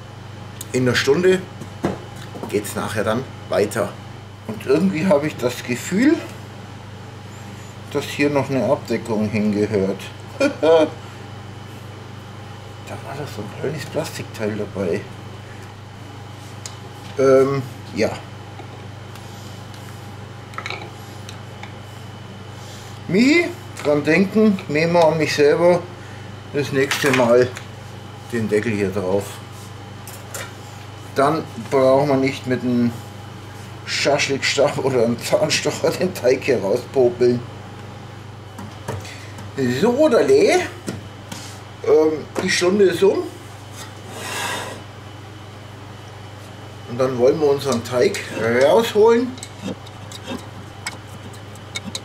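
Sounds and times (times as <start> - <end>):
air conditioner hum: 0.0 - 52.0.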